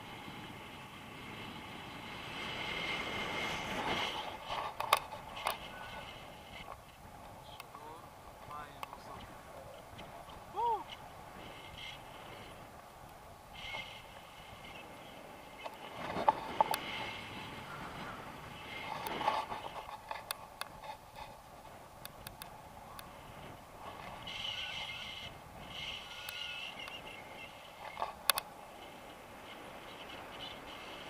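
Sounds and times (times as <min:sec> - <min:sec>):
wind rushing over microphone: 0:00.0 - 0:31.0.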